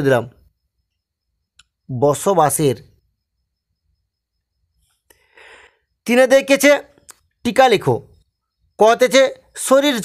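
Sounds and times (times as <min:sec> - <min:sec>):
man speaking: 0:00.0 - 0:00.5, 0:01.8 - 0:03.0, 0:06.0 - 0:08.2, 0:08.8 - 0:10.0.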